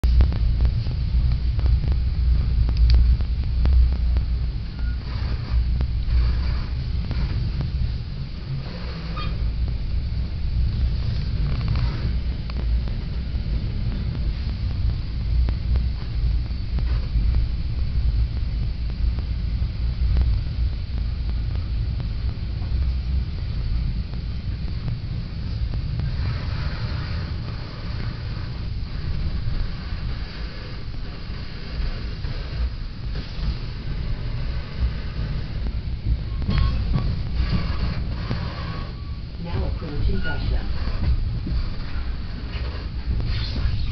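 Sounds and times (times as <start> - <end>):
train car rumble: 0.0 - 43.9.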